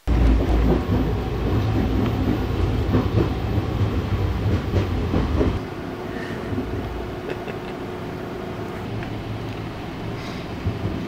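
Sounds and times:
train rumbling and rattling: 0.0s - 11.0s.

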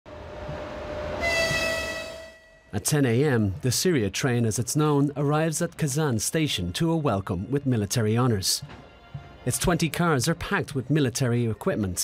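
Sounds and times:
train horn: 0.1s - 2.8s.

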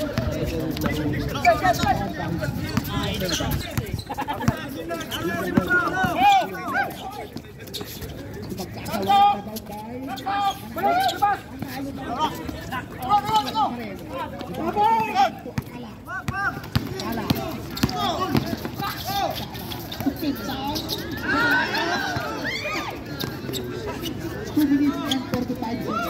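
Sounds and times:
players and spectators shouting: 0.0s - 26.0s.

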